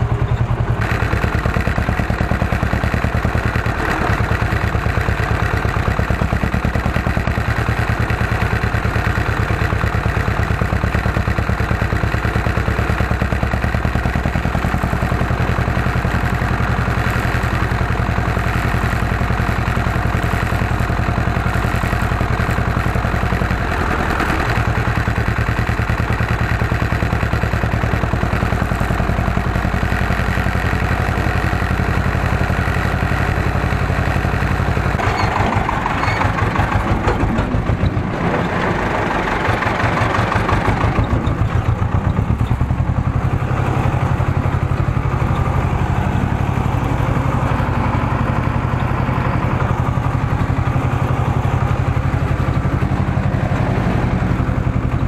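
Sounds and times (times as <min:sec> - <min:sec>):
tractor diesel engine running: 0:00.0 - 0:55.0.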